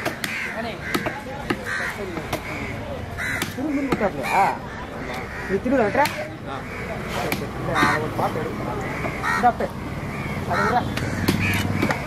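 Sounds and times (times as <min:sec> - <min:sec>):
crows cawing: 0:00.0 - 0:12.0.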